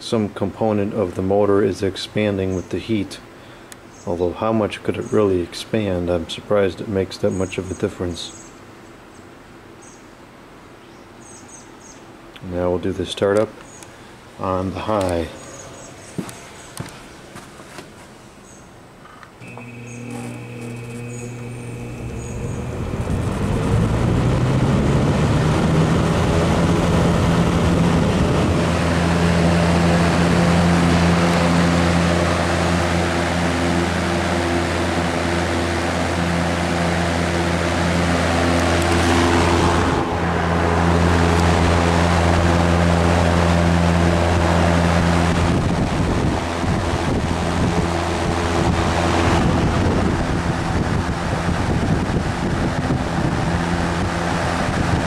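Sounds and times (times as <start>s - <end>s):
fan air rushing: 13.7s - 55.0s
fan motor hum: 19.2s - 55.0s.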